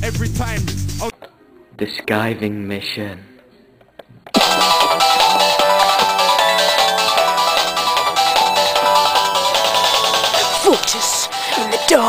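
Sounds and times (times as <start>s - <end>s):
music with a steady beat: 4.4s - 12.0s.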